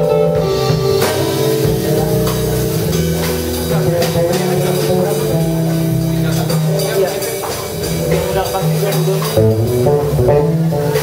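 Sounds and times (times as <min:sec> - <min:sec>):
drum and cymbal strikes: 0:00.0 - 0:11.0
jazz band playing: 0:00.0 - 0:11.0.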